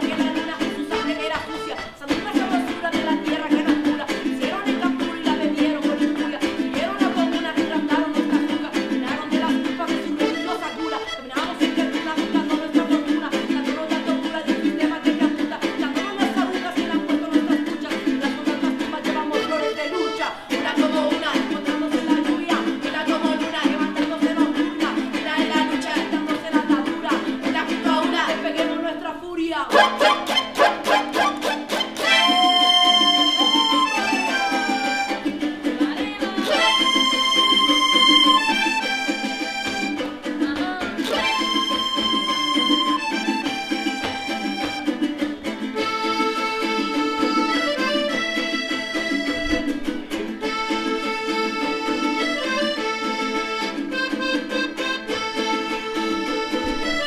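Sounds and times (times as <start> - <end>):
button accordion: 0.0 - 29.0, 29.7 - 57.0
women singing: 0.0 - 48.2
strummed jarana: 0.0 - 57.0.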